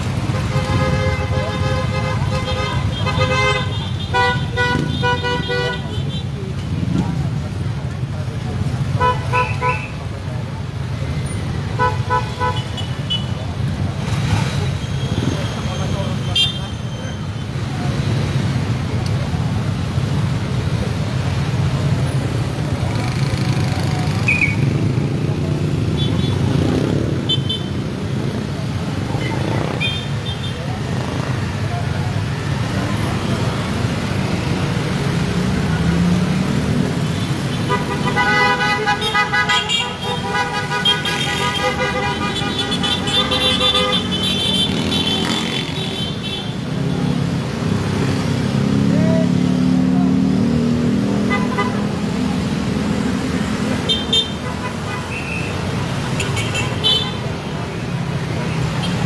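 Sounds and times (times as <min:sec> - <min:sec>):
engine and road rumble: 0:00.0 - 0:59.0
vehicle horns honking: 0:00.2 - 0:06.2, 0:08.9 - 0:10.0, 0:14.8 - 0:17.2, 0:37.1 - 0:46.6, 0:51.2 - 0:51.9, 0:53.8 - 0:57.4
voices: 0:02.7 - 0:54.3.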